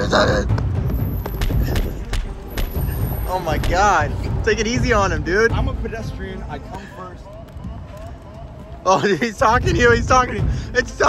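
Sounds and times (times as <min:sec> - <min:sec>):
running footsteps on concrete: 0:00.5 - 0:04.0.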